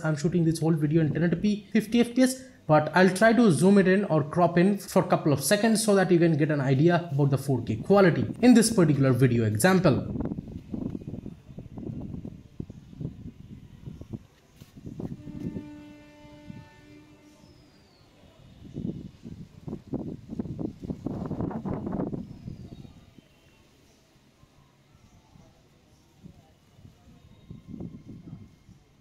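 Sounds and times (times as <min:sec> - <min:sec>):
horn-like tone: 0:14.9 - 0:19.3.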